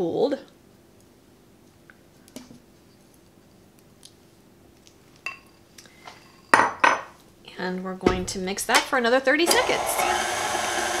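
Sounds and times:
kitchenware clattering: 6.2 - 7.2.

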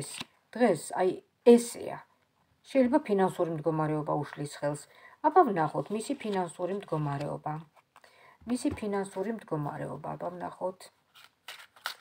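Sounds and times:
cards being shuffled: 11.1 - 12.0.

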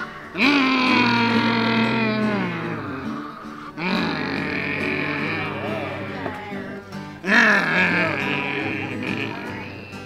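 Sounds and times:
acoustic guitar strummed: 0.0 - 10.0
vocal moan with sliding pitch: 0.0 - 10.0.

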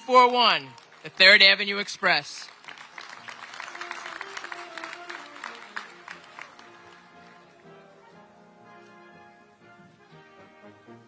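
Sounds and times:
audience clapping: 0.0 - 8.0
instrumental music: 3.3 - 11.0.

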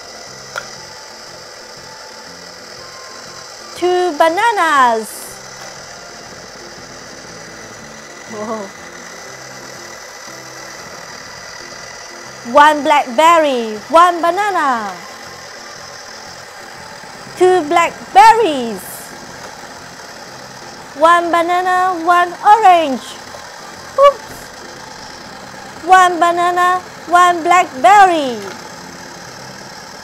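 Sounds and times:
toy blender motor whirring: 0.0 - 30.0.

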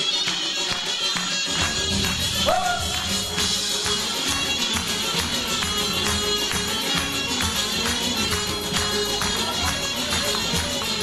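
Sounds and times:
audience clapping along: 0.0 - 11.0.

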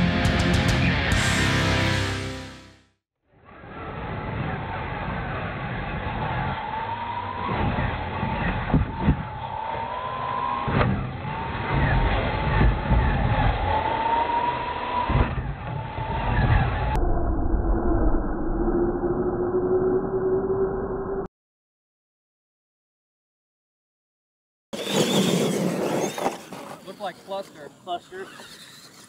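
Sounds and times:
trucks thumping on ramps: 7.3 - 16.9.

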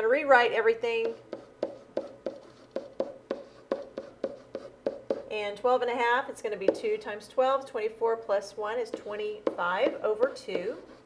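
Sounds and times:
pen writing on hard surface: 1.0 - 5.3, 8.9 - 11.0.

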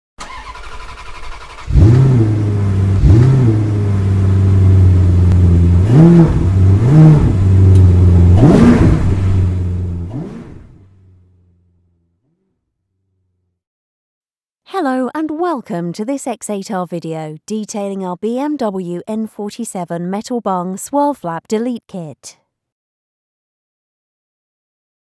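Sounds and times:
engine starting and revving: 0.2 - 11.5.

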